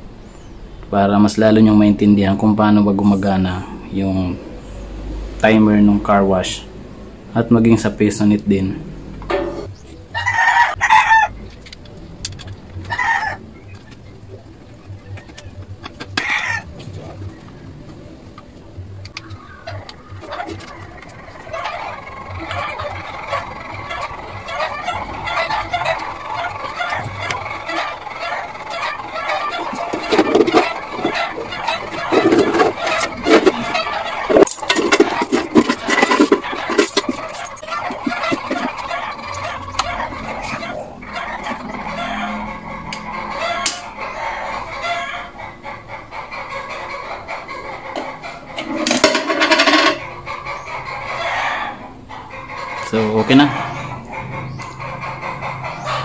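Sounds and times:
chickens clucking: 0.0s - 56.0s.

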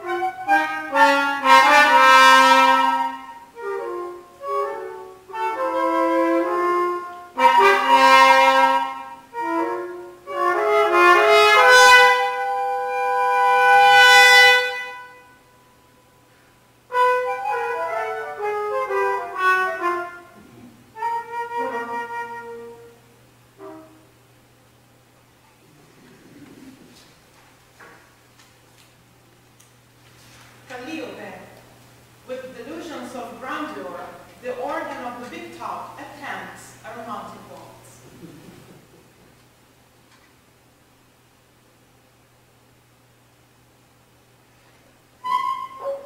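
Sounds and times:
french horn: 0.0s - 15.8s, 16.8s - 24.2s
low electrical hum: 0.0s - 46.0s
flute: 45.2s - 46.0s.

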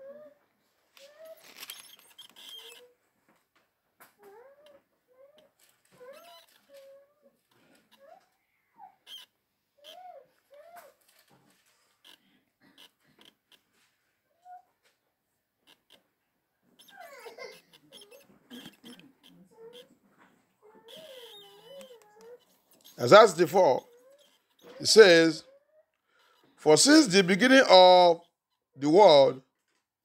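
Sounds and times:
pages rustling: 0.9s - 2.9s.

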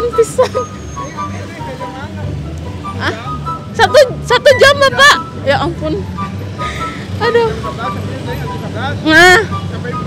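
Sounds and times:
motorcycle traffic hum: 0.0s - 10.0s.

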